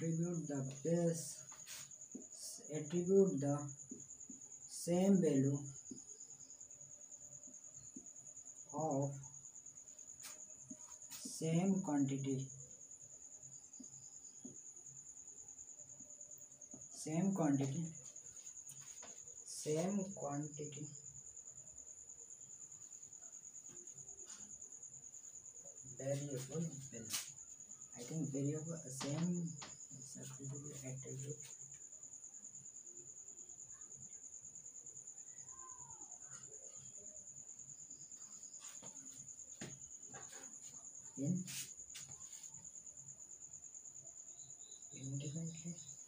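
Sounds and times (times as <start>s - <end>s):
cricket chirping: 0.0s - 46.0s.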